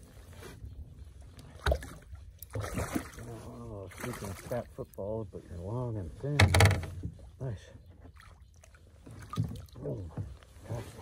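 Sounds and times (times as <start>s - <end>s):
water splashing against kayak: 1.3s - 4.7s, 8.0s - 11.0s.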